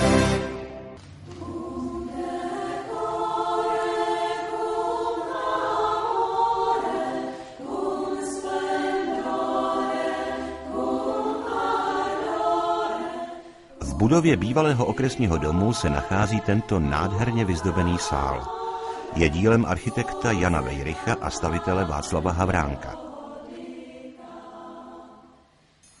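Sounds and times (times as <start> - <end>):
theme tune: 0.0 - 1.0
choir singing in harmony: 0.0 - 25.6.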